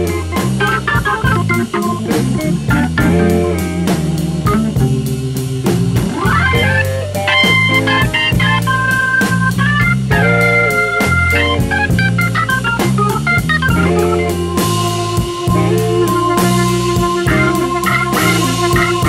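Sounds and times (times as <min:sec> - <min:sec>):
bass: 0:00.0 - 0:19.0
drum kit: 0:00.0 - 0:19.0
electric guitar: 0:00.0 - 0:19.0
hammond organ: 0:00.0 - 0:19.0.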